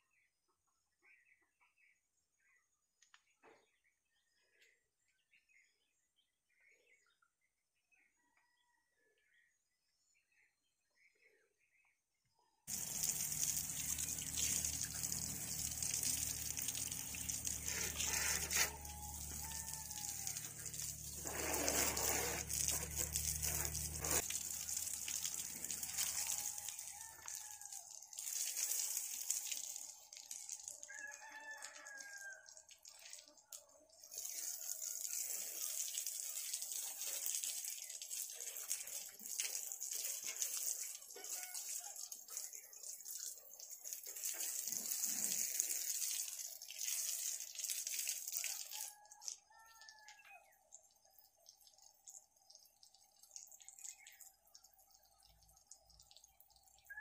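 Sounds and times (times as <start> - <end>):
rooster crowing: 17.5 - 24.2, 25.9 - 27.9, 30.9 - 32.6, 41.2 - 42.1, 48.4 - 50.4.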